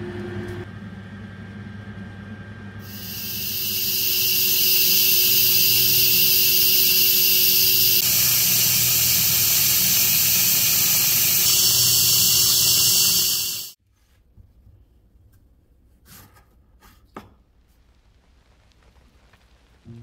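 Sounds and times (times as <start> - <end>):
loud high hiss: 2.8 - 13.8
faint low hum: 18.0 - 20.0.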